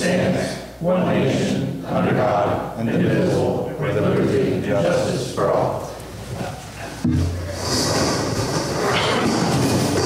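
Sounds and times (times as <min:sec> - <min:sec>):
metal chairs scraping on floor: 0:06.2 - 0:10.0.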